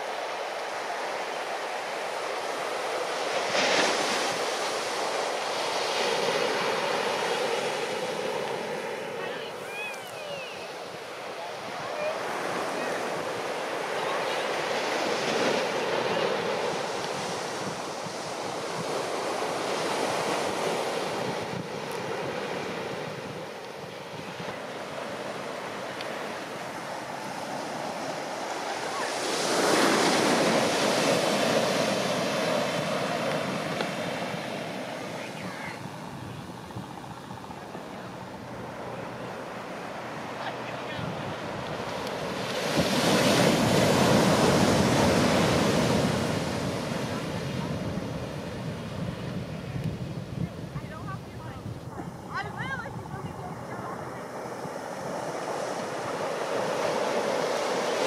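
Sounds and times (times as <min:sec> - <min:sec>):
big waves crashing: 0:00.0 - 0:58.0
surf washing: 0:00.0 - 0:58.0.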